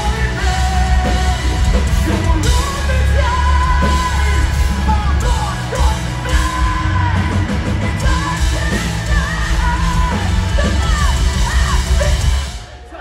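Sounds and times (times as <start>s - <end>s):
distorted electric guitars: 0.0s - 13.0s
drums: 0.0s - 13.0s
heavy bass: 0.0s - 13.0s
vocalist singing and yelling: 0.0s - 13.0s.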